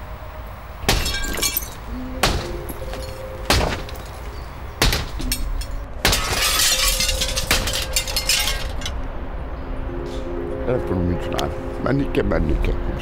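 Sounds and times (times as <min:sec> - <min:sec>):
faint musical drone: 0:00.0 - 0:13.0
glass shattering: 0:00.9 - 0:04.2, 0:04.8 - 0:09.0.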